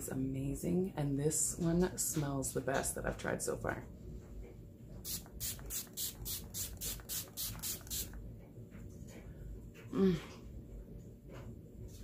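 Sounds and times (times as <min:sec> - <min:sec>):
spray bottle pumps hissing: 0:05.0 - 0:08.2.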